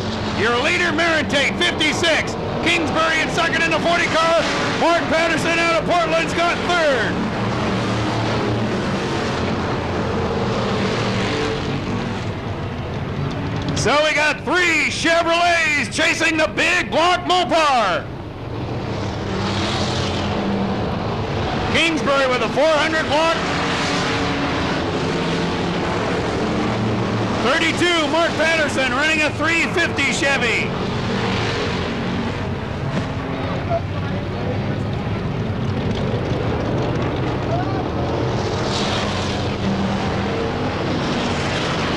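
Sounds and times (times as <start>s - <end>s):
race car engines: 0.0s - 41.9s.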